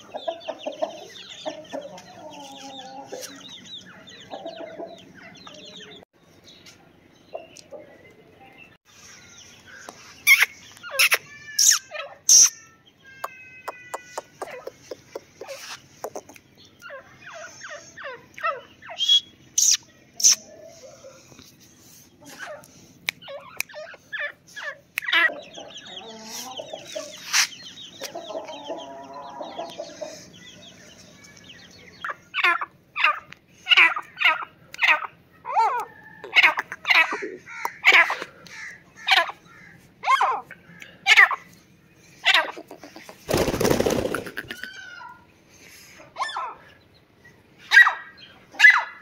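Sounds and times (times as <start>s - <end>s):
hen clucking: 0.0s - 6.0s, 13.2s - 21.5s, 22.2s - 30.7s, 31.6s - 41.5s, 42.2s - 45.2s.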